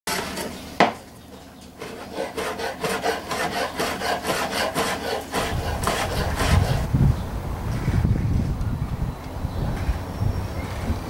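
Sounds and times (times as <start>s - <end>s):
knife rasping through bacon: 1.8s - 6.9s
wind rumble: 5.3s - 11.0s.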